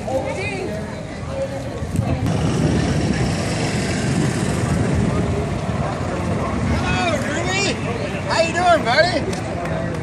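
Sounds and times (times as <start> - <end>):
outdoor crowd chatter: 0.0 - 10.0
low rumble: 2.1 - 7.2.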